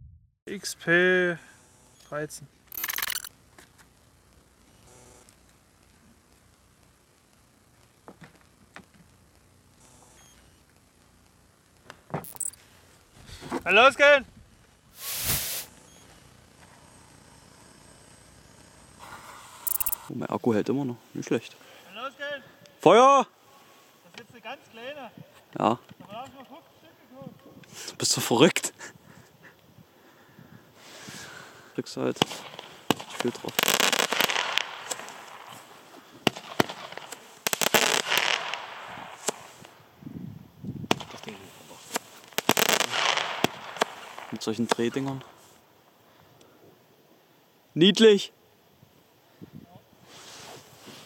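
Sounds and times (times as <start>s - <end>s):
rapid crackling clicks: 2.7s - 12.6s, 32.2s - 39.8s, 41.0s - 45.3s
firework battery popping: 14.9s - 17.2s, 18.3s - 20.1s, 32.1s - 39.9s, 40.8s - 45.4s
gas torch lighter hissing: 15.0s - 15.8s.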